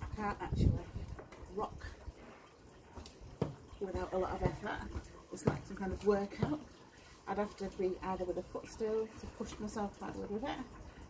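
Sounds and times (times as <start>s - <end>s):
woman speaking: 0.0s - 2.0s, 3.8s - 6.7s, 7.3s - 10.8s.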